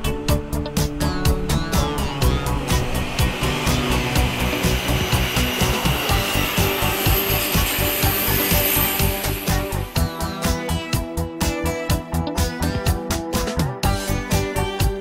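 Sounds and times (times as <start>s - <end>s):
passing electric train: 0.0s - 11.3s
background music with steady beat: 0.0s - 15.0s.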